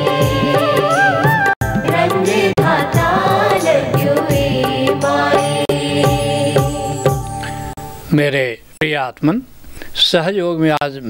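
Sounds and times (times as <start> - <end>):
percussion beat: 0.0 - 7.9
sustained accompaniment: 1.6 - 8.7.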